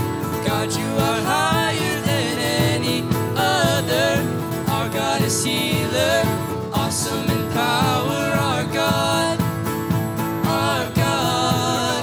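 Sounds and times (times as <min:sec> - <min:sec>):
people singing: 0:00.0 - 0:12.0
strummed acoustic guitar: 0:00.0 - 0:12.0.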